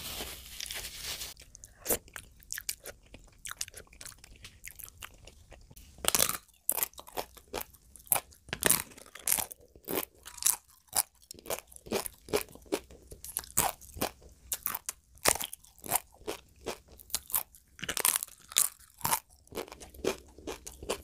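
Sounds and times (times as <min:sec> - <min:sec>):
chewing crisp food: 0:01.3 - 0:21.0.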